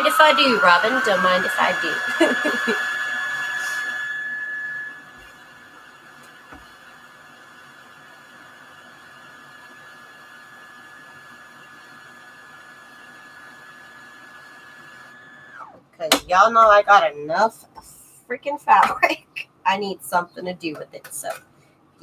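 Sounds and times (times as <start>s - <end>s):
bobbin winder whining: 0.0s - 8.0s, 9.1s - 16.8s.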